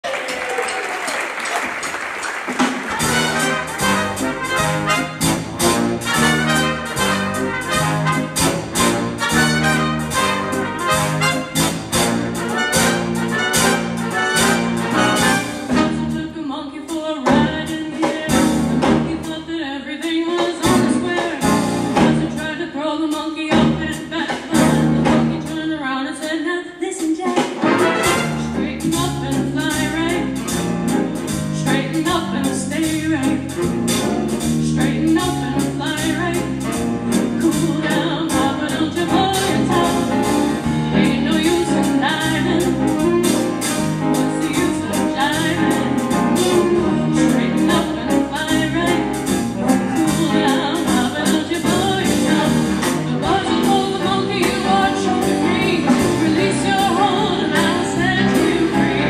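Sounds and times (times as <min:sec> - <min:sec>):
jazz big band playing: 0:01.4 - 0:59.0
drums keeping steady beat: 0:02.4 - 0:16.1, 0:20.4 - 0:22.5, 0:27.0 - 0:59.0
trumpets and trombones: 0:02.8 - 0:16.2, 0:27.5 - 0:28.8, 0:38.7 - 0:48.1
woman singing: 0:15.7 - 0:30.5, 0:31.5 - 0:33.6, 0:34.6 - 0:59.0.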